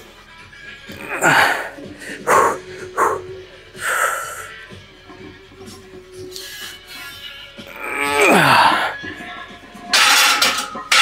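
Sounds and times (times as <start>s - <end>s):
man grunting: 1.0s - 3.2s, 7.7s - 9.0s
man breathing hard: 1.0s - 4.7s.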